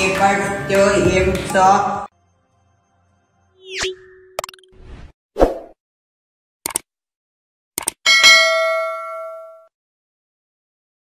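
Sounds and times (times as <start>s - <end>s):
bell sound effect: 8.1s - 9.7s.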